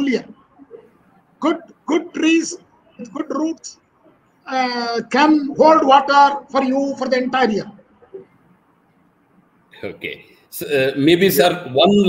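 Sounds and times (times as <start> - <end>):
man speaking: 0.0 - 0.4, 1.4 - 3.8, 4.4 - 7.8, 9.7 - 12.0.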